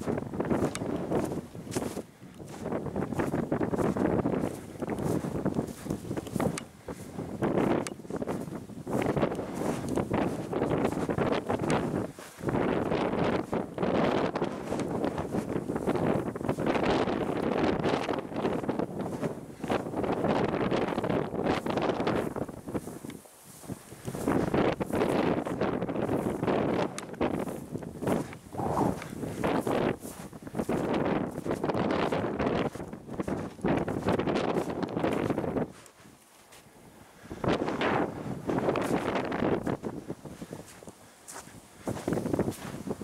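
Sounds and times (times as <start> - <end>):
gusty wind buffeting microphone: 0.0 - 43.0.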